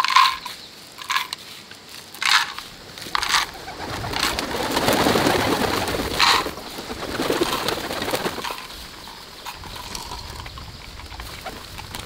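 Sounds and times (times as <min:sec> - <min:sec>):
grain rattling into wooden boxes: 0:00.0 - 0:10.4
pigeons flapping wings: 0:02.2 - 0:12.0.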